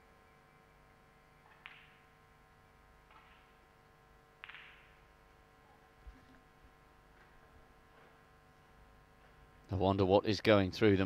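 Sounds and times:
snooker balls clicking: 1.5s - 2.0s, 4.4s - 5.0s.

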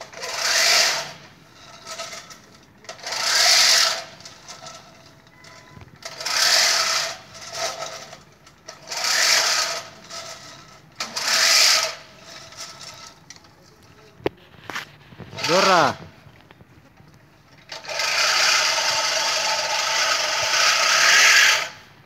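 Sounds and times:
reel lawn mower blades whirring: 0.0s - 16.6s, 17.5s - 22.0s.

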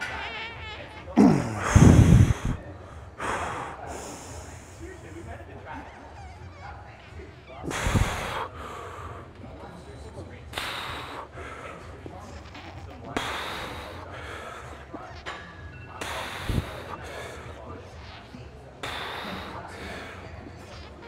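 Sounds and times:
man breathing out hard: 7.7s - 8.4s, 16.0s - 16.8s.

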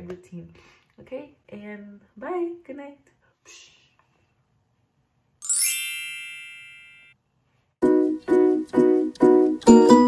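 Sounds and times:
shimmering chime ding: 5.4s - 7.2s
plucked outro music: 7.8s - 10.0s.

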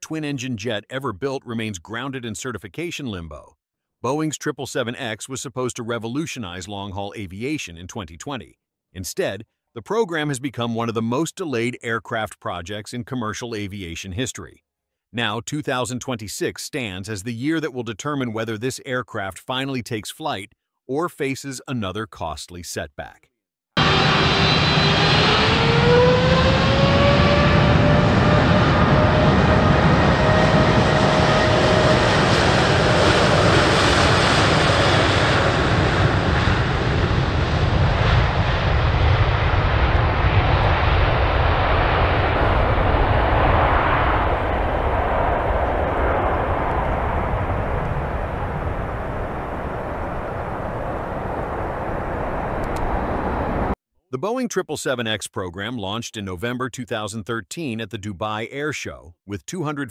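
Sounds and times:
jet engines at takeoff: 23.8s - 53.8s.

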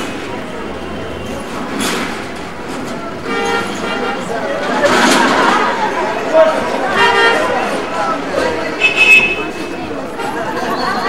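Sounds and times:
busy street market bustle: 0.0s - 11.0s.

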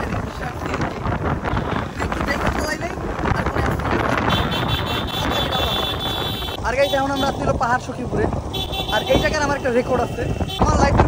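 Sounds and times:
wind and road noise on motorcycle: 0.0s - 11.0s.

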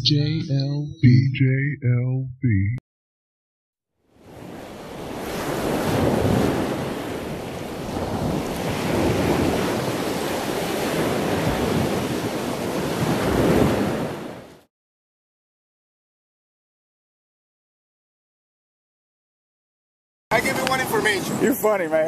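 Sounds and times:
ocean waves washing in: 4.1s - 14.7s.

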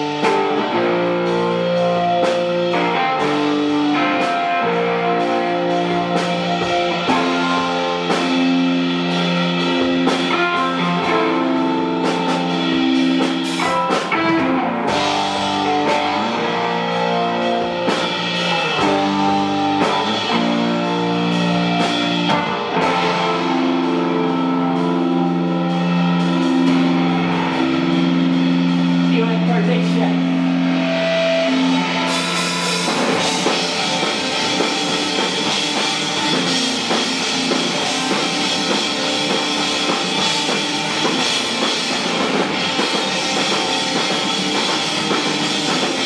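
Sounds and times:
drum kit: 0.0s - 46.0s
electric guitar sustaining notes: 0.0s - 46.0s.

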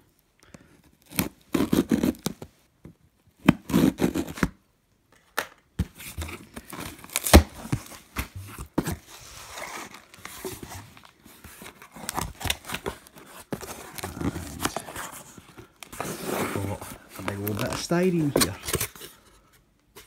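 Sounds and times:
cardboard box tape tearing: 1.0s - 2.4s, 3.4s - 4.6s, 6.3s - 8.0s, 11.6s - 19.0s.

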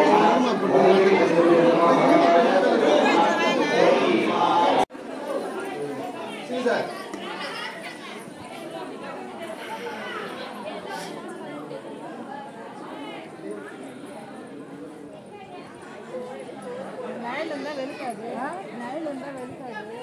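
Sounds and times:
crowd chatter: 0.0s - 20.0s
scattered voices: 0.0s - 20.0s.

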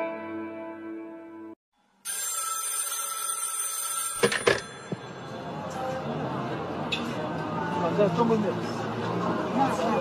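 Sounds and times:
telephone ringing: 2.1s - 5.4s.

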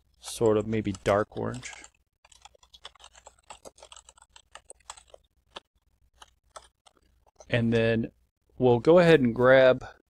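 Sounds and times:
typing on computer keyboard: 0.3s - 7.4s.

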